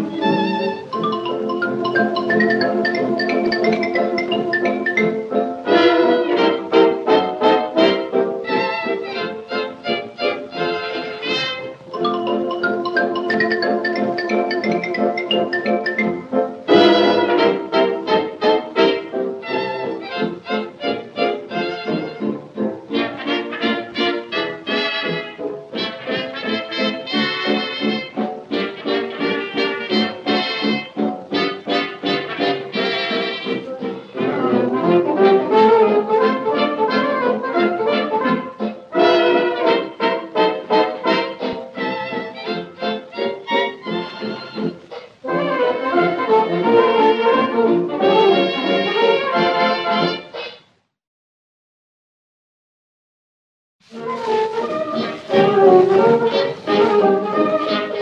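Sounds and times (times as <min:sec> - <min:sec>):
dance-band music with brass: 0:00.0 - 0:50.6, 0:53.8 - 0:58.0.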